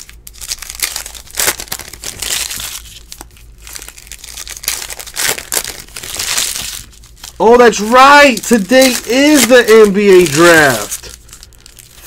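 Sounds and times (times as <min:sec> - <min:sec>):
foil wrapper tearing and crinkling: 0:00.0 - 0:12.0.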